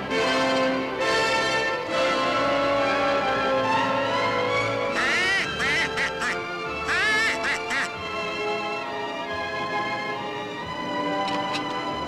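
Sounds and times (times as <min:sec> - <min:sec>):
music: 0:00.0 - 0:12.0
duck call quacks: 0:05.0 - 0:08.0.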